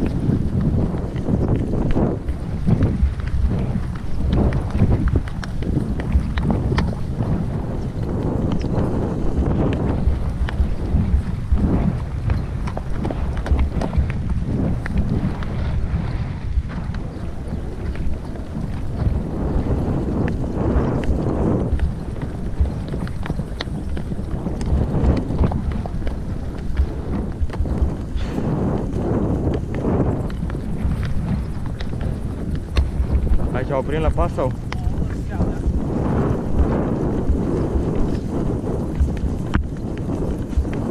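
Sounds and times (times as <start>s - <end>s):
horse hoofbeats: 0.0s - 40.9s
wind rumbling on microphone: 0.0s - 40.9s.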